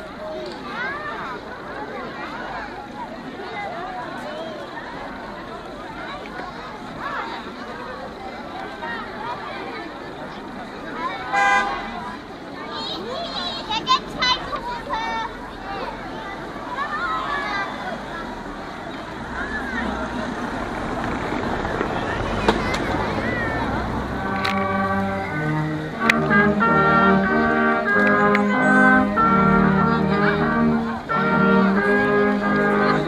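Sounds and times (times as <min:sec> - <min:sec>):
crowd chatter: 0:00.0 - 0:33.0
vehicle horn toot: 0:11.3 - 0:12.0
brass band playing slow tune: 0:11.3 - 0:12.1, 0:23.6 - 0:33.0.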